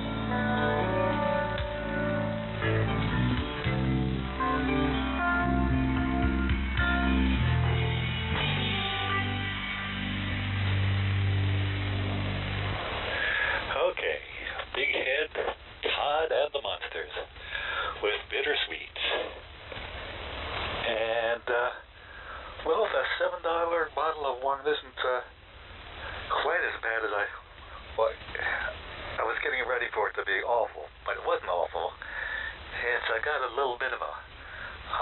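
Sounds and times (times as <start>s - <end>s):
guitar music: 0.0s - 13.1s
shortwave radio reception: 9.6s - 35.0s
person talking: 13.7s - 17.3s.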